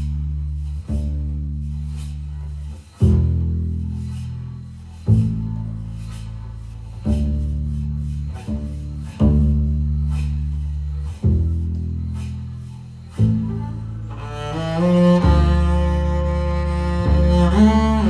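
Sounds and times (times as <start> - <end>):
double bass playing low notes: 0.0 - 18.0.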